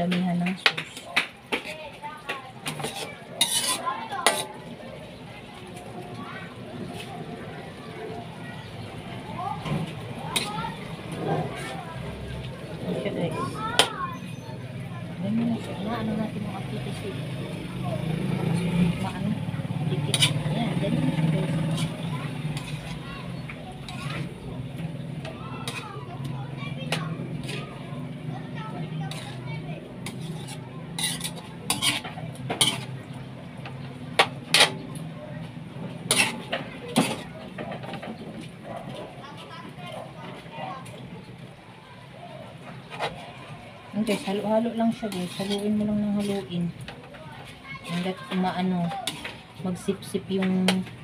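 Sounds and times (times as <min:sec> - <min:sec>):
metal spoon scraping a wok: 0:02.6 - 0:04.7, 0:10.2 - 0:11.8, 0:15.5 - 0:28.2, 0:28.9 - 0:34.9, 0:35.9 - 0:38.0, 0:44.0 - 0:46.9, 0:47.8 - 0:50.9.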